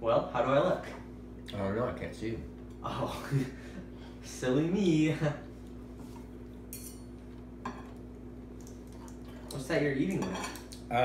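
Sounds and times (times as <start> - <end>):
person laughing: 2.8 - 4.0.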